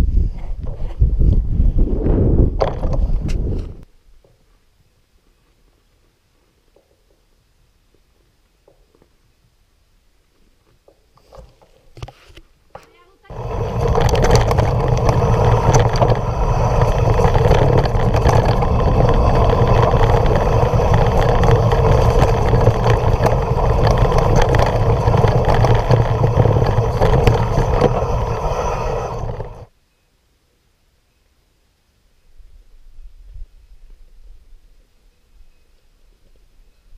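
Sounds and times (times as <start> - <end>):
bike rattling on rocky trail: 12.8 - 29.7.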